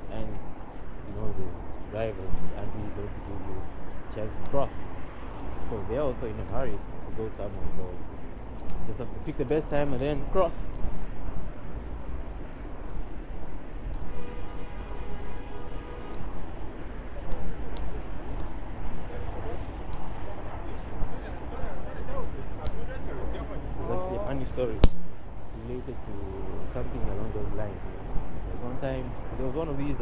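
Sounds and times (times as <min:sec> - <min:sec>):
traffic rumble: 0:00.0 - 0:30.0.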